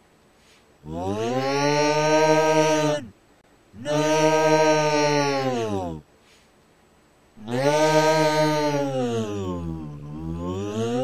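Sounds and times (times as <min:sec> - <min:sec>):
creature's long deep yell: 0:00.8 - 0:03.1, 0:03.8 - 0:06.0, 0:07.4 - 0:11.0.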